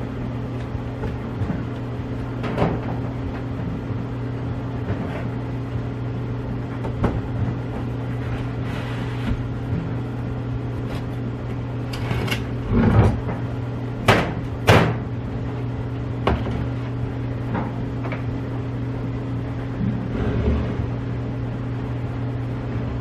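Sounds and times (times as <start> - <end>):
steady low hum: 0.0 - 23.0.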